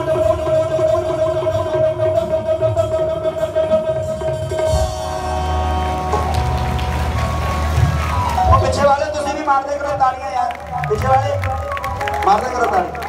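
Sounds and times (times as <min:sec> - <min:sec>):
man singing over amplified music: 0:00.0 - 0:06.1
keyboard chords: 0:04.7 - 0:13.0.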